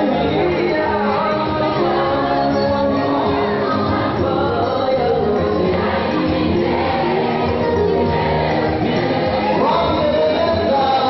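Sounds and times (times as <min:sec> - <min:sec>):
choir singing gospel: 0:00.0 - 0:11.0.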